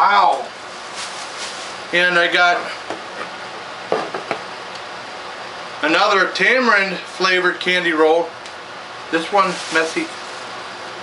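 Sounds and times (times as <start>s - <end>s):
rustles and clicks: 0.7s - 1.8s
steady hiss: 9.1s - 11.0s.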